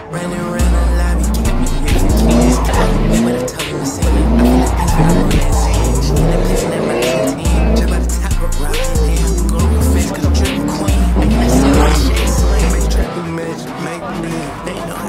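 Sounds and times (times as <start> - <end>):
car engine revving: 0.0 - 15.0
hip-hop music with heavy bass: 0.0 - 15.0
tyres squealing: 0.0 - 15.0.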